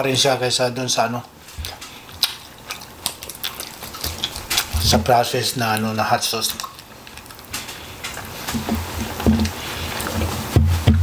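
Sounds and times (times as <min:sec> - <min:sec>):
chewing with wet clicks: 0:01.2 - 0:10.2.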